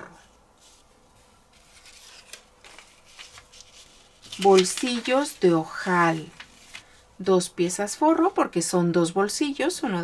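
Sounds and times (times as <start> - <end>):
paper rustling on tabletop: 0.2 - 7.0.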